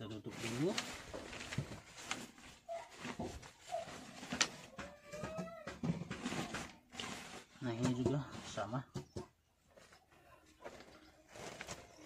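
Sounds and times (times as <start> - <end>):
plastic bag crinkling: 0.1 - 4.7, 10.6 - 12.0.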